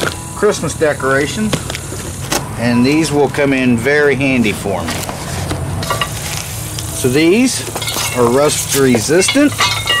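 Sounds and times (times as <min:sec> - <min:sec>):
cardboard box rustling and scraping: 0:04.8 - 0:06.5
metal poles clicking: 0:09.0 - 0:10.0.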